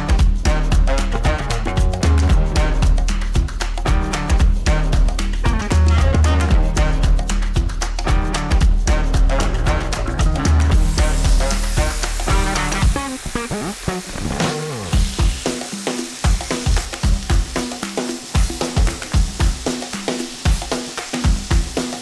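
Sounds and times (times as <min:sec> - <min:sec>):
background music with drum beat: 0:00.0 - 0:22.0
livers sizzling in frying pan: 0:10.7 - 0:22.0.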